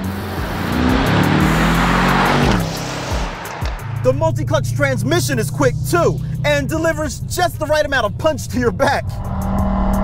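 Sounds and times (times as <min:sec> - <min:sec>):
car accelerating past: 0:00.0 - 0:04.0.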